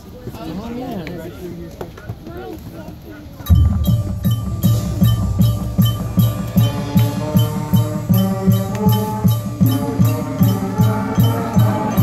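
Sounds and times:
marching band playing: 3.4s - 12.0s
low drum beat: 3.5s - 12.0s.

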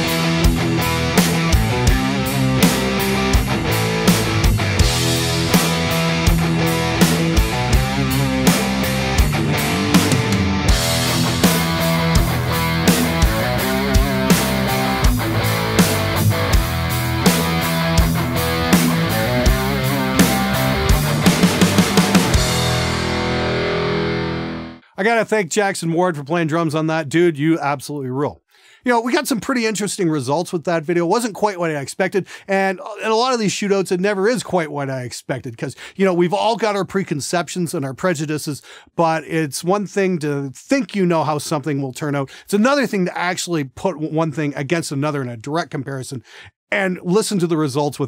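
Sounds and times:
drum kit hits: 0.0s - 24.6s
distorted electric guitar chords: 0.0s - 24.8s.

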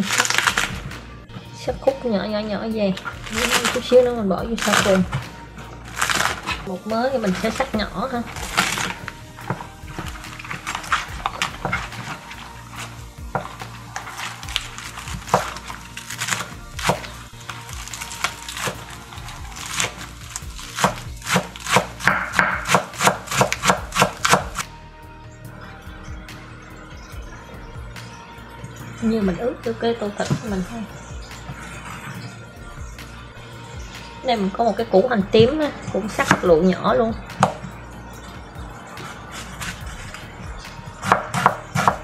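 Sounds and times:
background music: 0.0s - 42.0s
knife chopping on wooden board: 20.8s - 24.6s, 41.0s - 42.0s.

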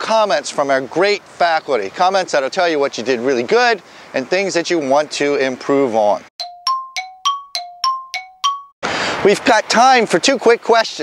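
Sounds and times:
two-tone chime dings: 6.4s - 8.8s.

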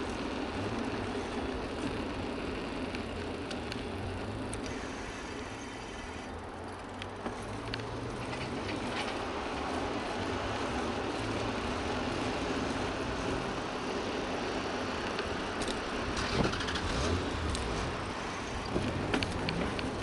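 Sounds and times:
bicycle tyres on paved road: 0.0s - 20.0s
rushing wind: 0.0s - 20.0s
sharp clicks and knocks: 18.6s - 20.0s.

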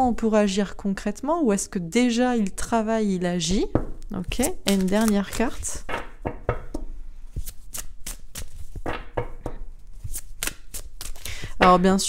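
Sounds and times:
cards being shuffled: 4.0s - 11.6s.

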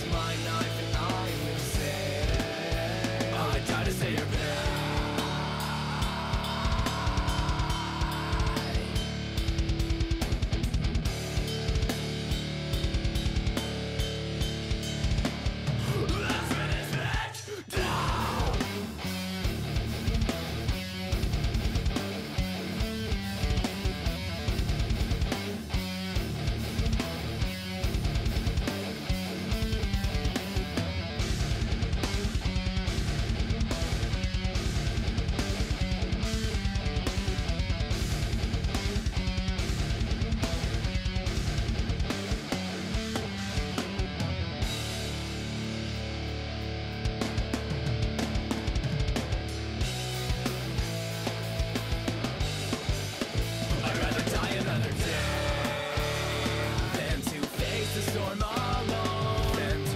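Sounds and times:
fast drum rhythm: 0.0s - 45.1s, 47.3s - 59.9s
bass guitar: 0.0s - 59.9s
electric guitars: 0.0s - 59.9s.

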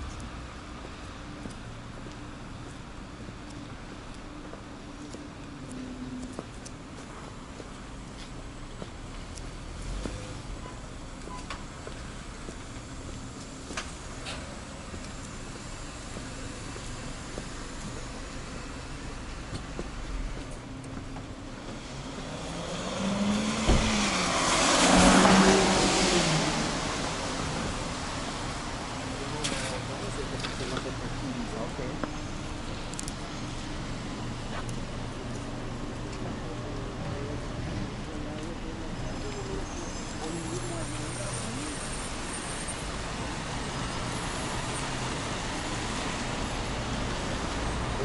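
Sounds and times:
cars moving on wet pavement: 0.0s - 48.0s.

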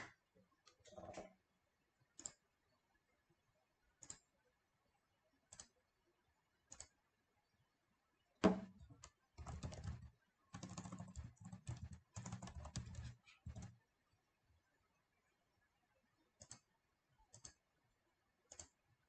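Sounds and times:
keyboard typing: 8.5s - 13.8s, 16.4s - 16.7s, 17.3s - 17.6s, 18.5s - 18.8s.

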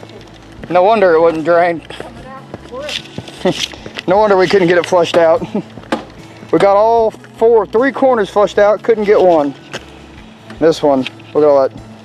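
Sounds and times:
man laughing softly: 5.4s - 5.8s.

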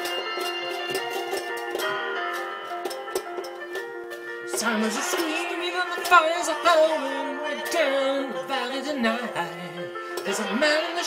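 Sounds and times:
banjo strummed chords: 0.0s - 11.0s.

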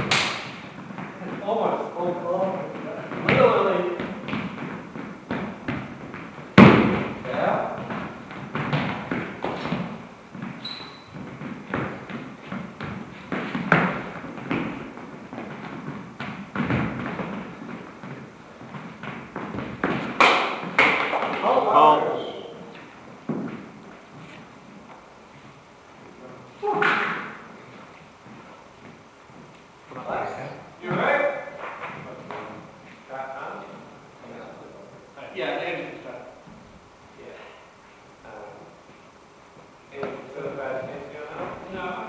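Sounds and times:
footsteps on hard floor: 2.4s - 21.6s, 22.7s - 25.6s.

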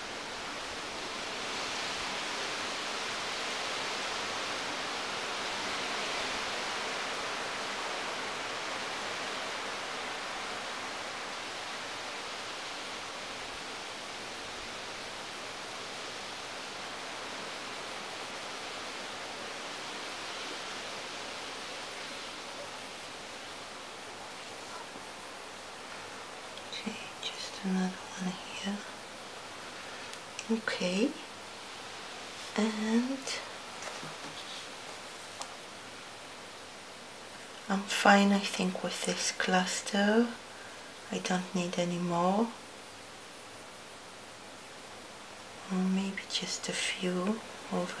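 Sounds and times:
steady rushing hiss: 0.0s - 48.0s.

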